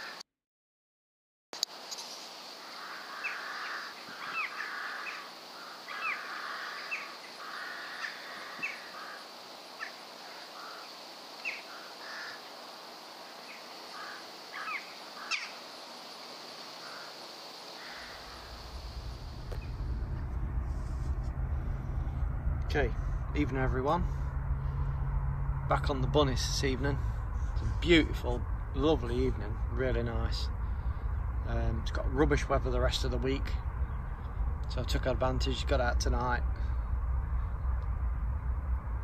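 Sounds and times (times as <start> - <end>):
steady high hiss: 1.6 - 21.2
crows cawing: 2.6 - 19.9
low rumble: 18.2 - 39.0.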